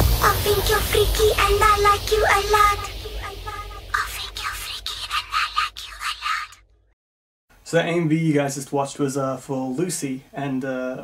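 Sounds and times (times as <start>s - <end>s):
high-pitched voice: 0.2s - 6.6s.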